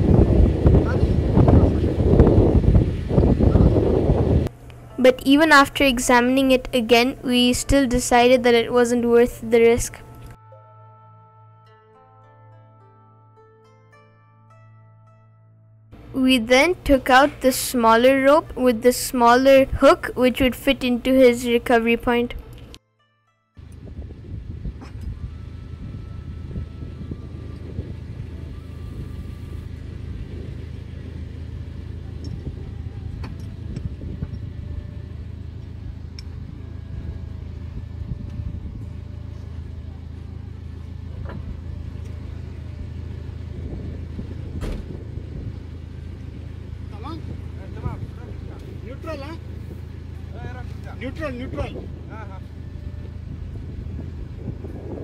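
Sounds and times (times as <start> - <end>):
vehicle engine idling: 0.0 - 10.4, 23.6 - 55.0.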